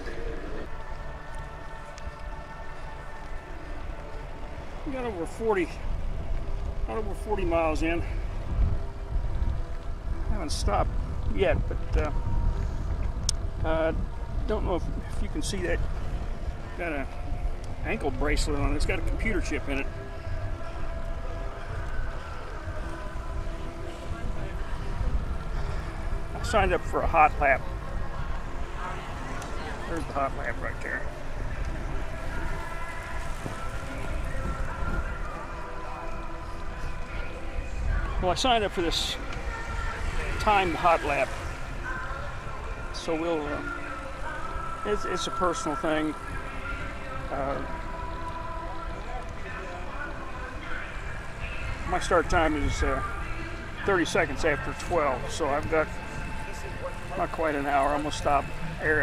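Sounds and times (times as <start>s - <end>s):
wind buffeting microphone: 0.0s - 43.0s.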